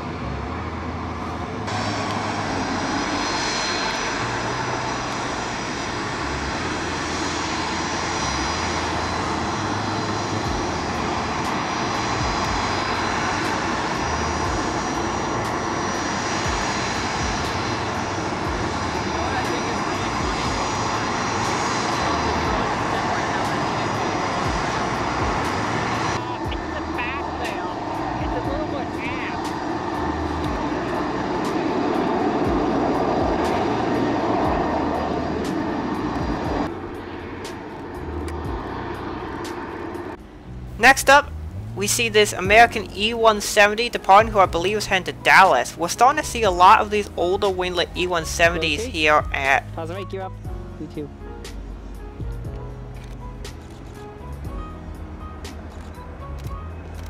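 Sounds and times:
jet engines whining: 0.0s - 50.6s.

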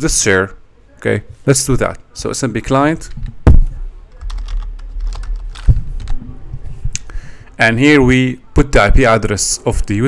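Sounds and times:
computer keyboard typing: 4.1s - 6.2s.

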